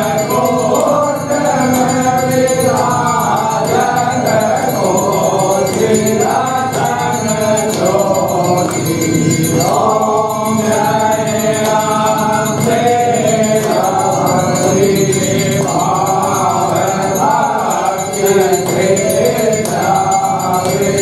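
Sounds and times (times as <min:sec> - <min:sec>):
light percussion beat: 0:00.0 - 0:21.0
voices singing a hymn: 0:00.0 - 0:21.0.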